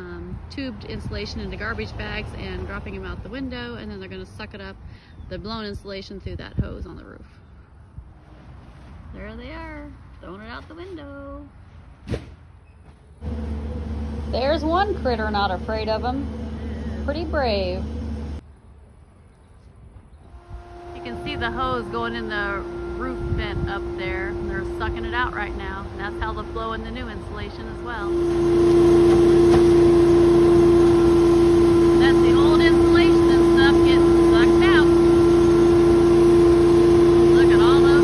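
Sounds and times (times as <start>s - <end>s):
thump: 12.0s - 13.0s
vacuum machine droning: 13.2s - 18.4s, 20.2s - 38.0s.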